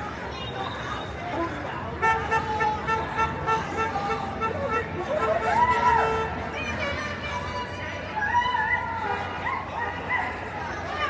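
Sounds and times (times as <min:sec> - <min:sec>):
street noise: 0:00.0 - 0:11.0
voices: 0:00.0 - 0:11.0
vehicle horn honking rapidly: 0:02.0 - 0:06.4.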